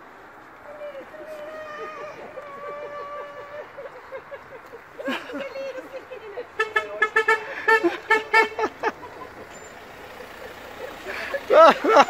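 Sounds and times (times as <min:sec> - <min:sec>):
vehicle horn short toots: 0:06.6 - 0:08.6.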